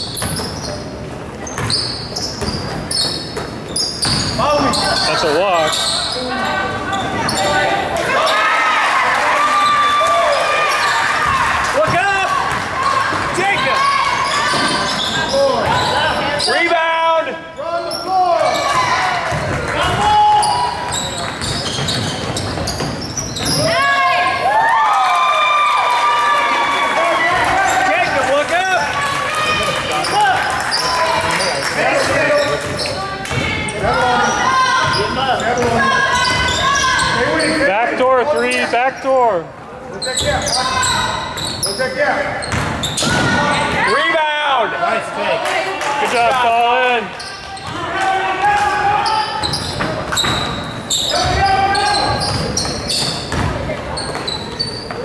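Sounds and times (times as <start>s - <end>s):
shoe squeaks: 0.0s - 8.4s, 10.6s - 11.1s, 13.6s - 16.7s, 17.6s - 18.9s, 20.4s - 23.9s, 32.2s - 39.0s, 39.9s - 44.0s, 47.1s - 47.8s, 49.0s - 55.0s.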